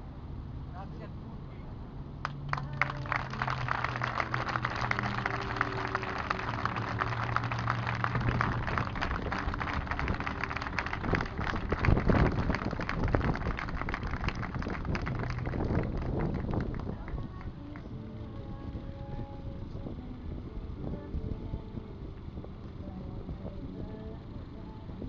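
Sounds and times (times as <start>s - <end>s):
crowd applauding: 2.2s - 17.8s.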